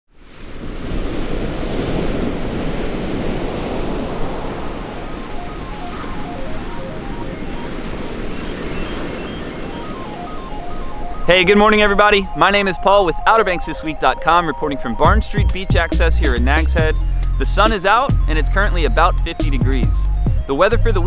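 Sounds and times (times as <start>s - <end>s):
ocean waves breaking: 0.1s - 15.2s.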